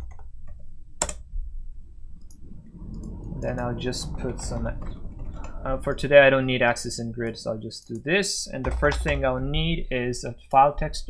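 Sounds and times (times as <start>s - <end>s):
computer keyboard and mouse clicks: 0.0s - 1.2s
low steady hum: 0.0s - 11.0s.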